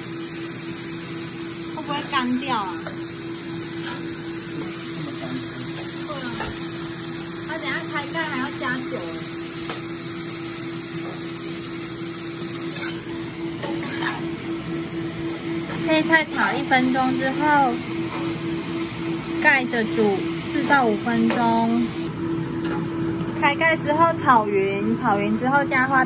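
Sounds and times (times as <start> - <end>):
food sizzling in a wok: 0.0 - 23.6
spatula scraping wok: 10.7 - 22.0
constant hum: 10.9 - 26.0.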